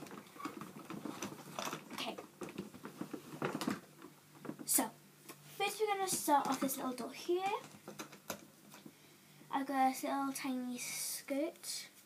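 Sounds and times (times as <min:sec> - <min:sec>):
plastic hangers clicking and rattling: 0:00.0 - 0:03.8.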